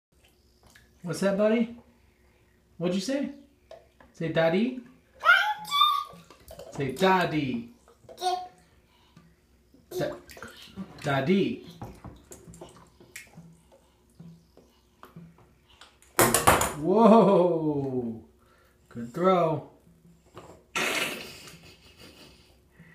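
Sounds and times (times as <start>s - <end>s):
bath water splashing: 5.6s - 8.6s, 9.9s - 14.4s.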